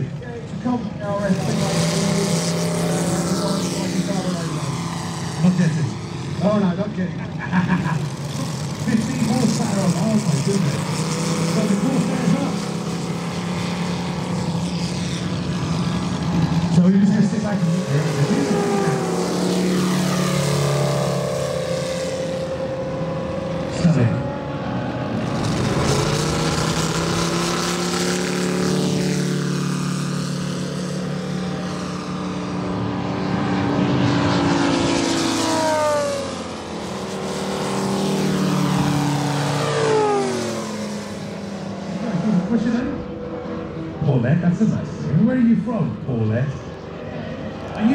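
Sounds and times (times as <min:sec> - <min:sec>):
model plane engines running: 0:00.0 - 0:47.9.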